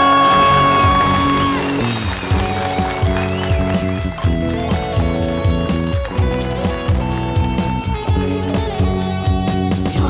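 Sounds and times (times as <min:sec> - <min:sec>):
bass guitar: 0:00.0 - 0:10.0
electric guitars: 0:00.0 - 0:10.0.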